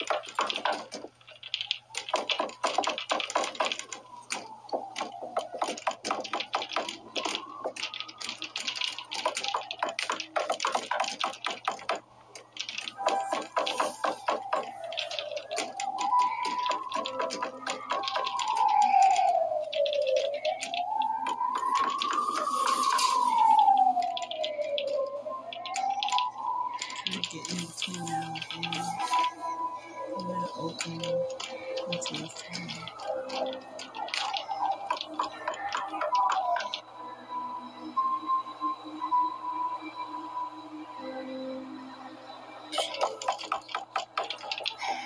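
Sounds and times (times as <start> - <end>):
rapid clicking: 0.0 - 23.3, 30.8 - 36.8, 42.8 - 45.0
eerie rising and falling tone: 0.0 - 45.0.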